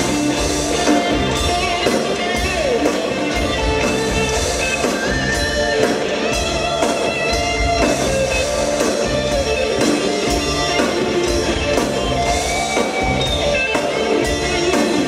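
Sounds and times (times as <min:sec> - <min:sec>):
electric guitar melody: 0:00.0 - 0:15.0
rock band playing live: 0:00.0 - 0:15.0.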